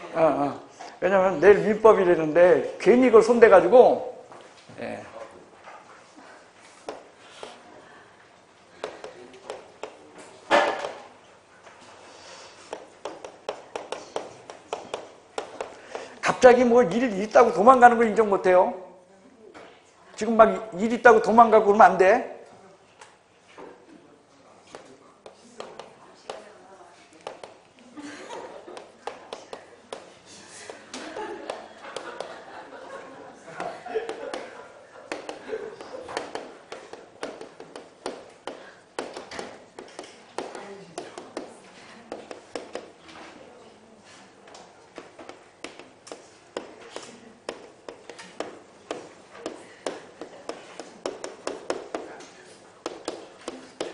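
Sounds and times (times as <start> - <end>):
chalk tapping on chalkboard: 6.8 - 7.6, 8.8 - 11.0, 12.6 - 16.2, 24.7 - 26.5, 27.2 - 27.7, 28.7 - 32.3, 33.6 - 43.0, 44.9 - 53.9.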